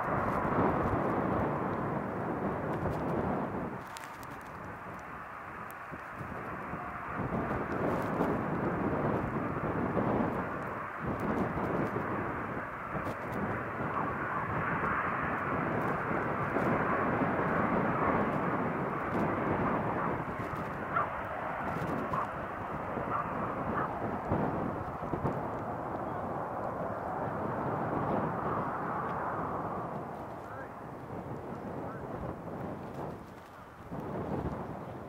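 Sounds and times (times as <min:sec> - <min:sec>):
jet engine rumble: 0:00.0 - 0:35.0.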